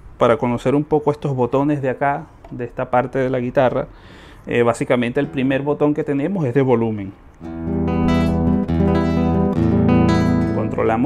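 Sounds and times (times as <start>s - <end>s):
nylon-string guitar chords strummed: 5.2s - 6.0s, 7.4s - 11.0s.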